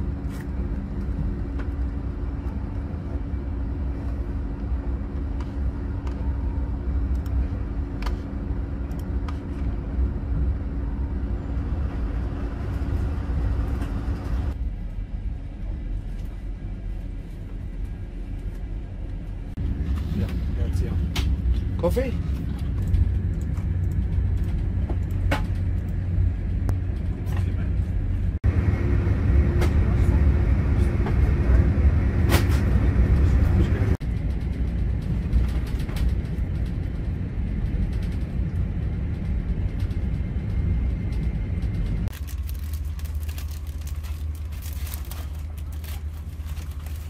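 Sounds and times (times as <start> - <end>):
train rumble inside carriage: 0.0 - 47.0.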